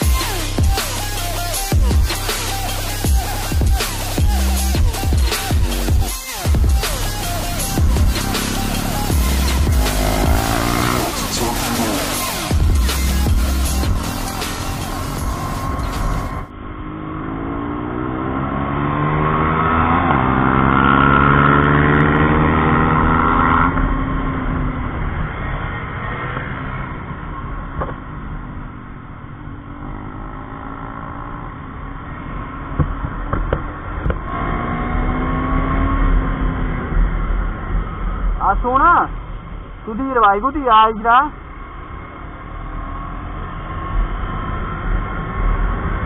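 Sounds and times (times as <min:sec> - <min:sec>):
motorcycle engine accelerating: 0:00.0 - 0:38.4, 0:41.4 - 0:46.0.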